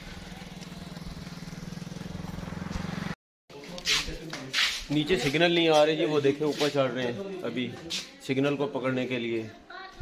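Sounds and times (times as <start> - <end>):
motorcycle engine running: 0.0 - 3.2.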